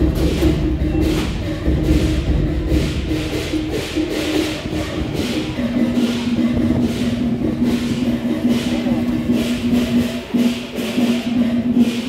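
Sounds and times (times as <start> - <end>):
percussion beat: 0.0 - 12.0.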